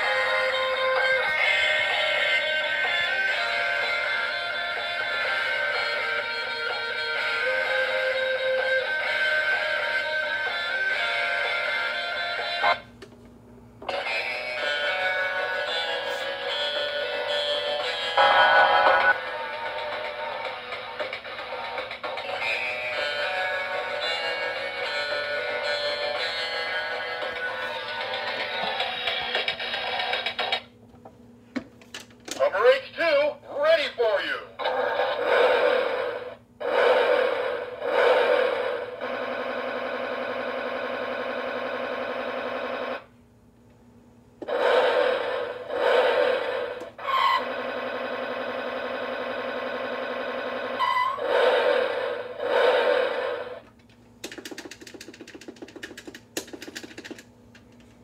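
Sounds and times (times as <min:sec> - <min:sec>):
toy voice-like phrases: 0:32.4 - 0:34.6.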